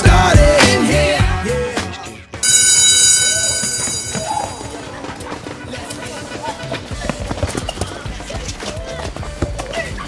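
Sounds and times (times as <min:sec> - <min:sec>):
running feet: 0:02.3 - 0:10.0
school bell ringing: 0:02.4 - 0:05.0.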